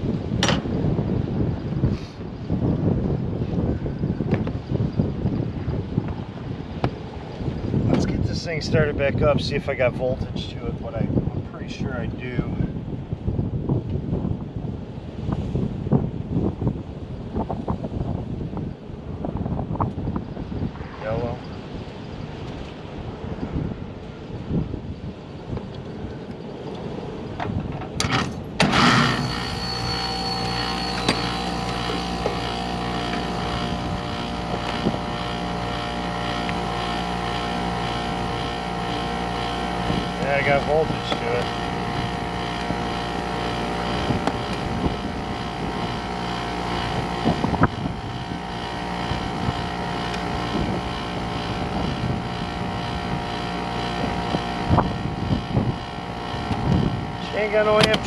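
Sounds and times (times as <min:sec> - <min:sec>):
condensing unit humming: 0:27.9 - 0:58.0.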